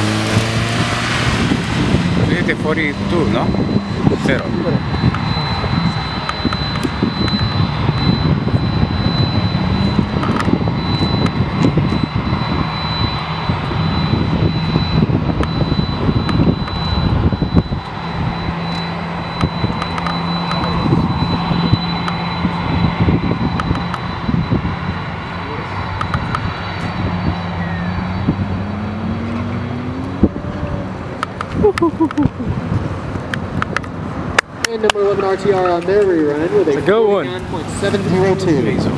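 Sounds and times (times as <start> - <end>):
car engine revving: 0.0 - 31.6.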